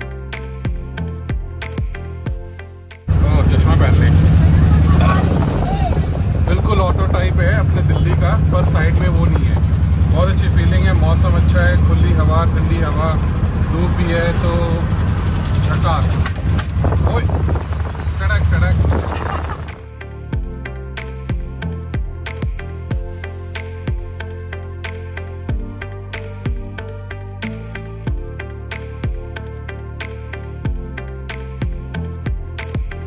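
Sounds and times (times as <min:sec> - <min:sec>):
voices talking: 0:03.1 - 0:16.4
engine and road noise drone: 0:03.1 - 0:33.0.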